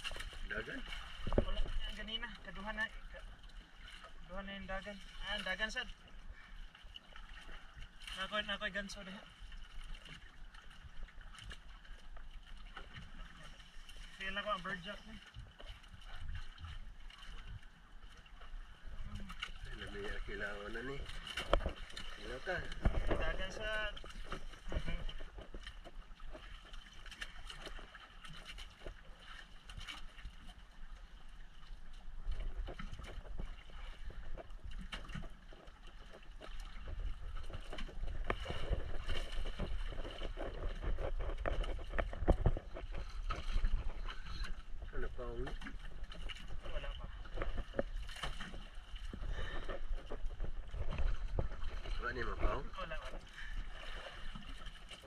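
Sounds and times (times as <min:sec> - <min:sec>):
sea water washing around boat: 0:00.0 - 0:55.0
wind rumbling on microphone: 0:20.9 - 0:26.4, 0:36.0 - 0:53.8.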